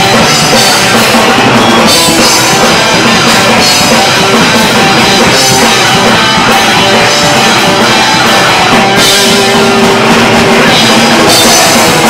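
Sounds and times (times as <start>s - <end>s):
bass guitar: 0.0s - 12.0s
distorted electric guitars: 0.0s - 12.0s
drum kit: 0.0s - 12.0s.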